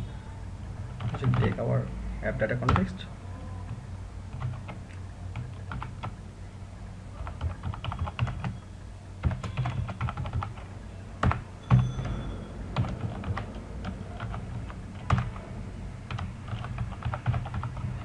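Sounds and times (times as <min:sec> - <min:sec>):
typing on computer keyboard: 0:01.0 - 0:01.6, 0:03.7 - 0:06.2, 0:07.2 - 0:08.6, 0:09.2 - 0:12.2, 0:12.8 - 0:15.5, 0:16.1 - 0:18.0.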